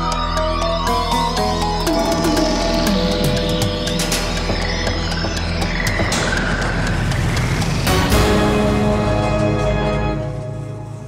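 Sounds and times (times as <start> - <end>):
electronic theme music: 0.0 - 11.0.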